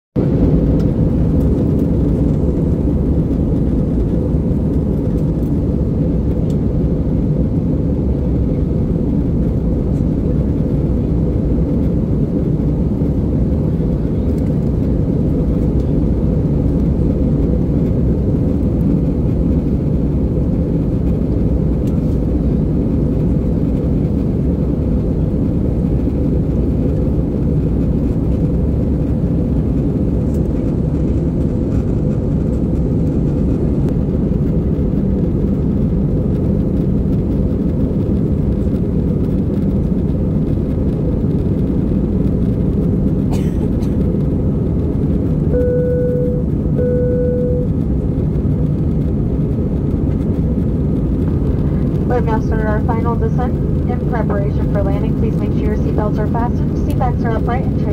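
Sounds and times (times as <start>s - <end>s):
jet airliner cabin rumble: 0.2s - 57.9s.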